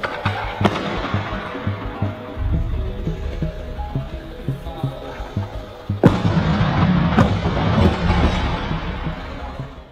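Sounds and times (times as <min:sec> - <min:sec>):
background music with beat: 0:00.0 - 0:09.9.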